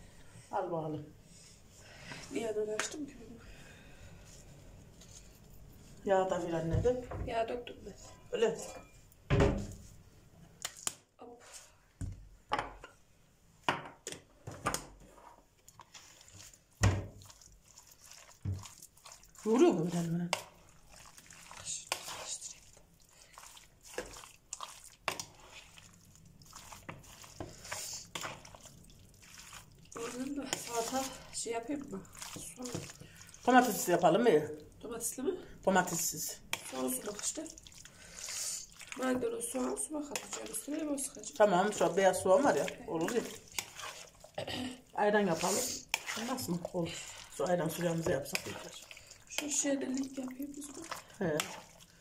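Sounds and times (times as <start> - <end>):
wet squishing of meat: 15.2 - 52.0.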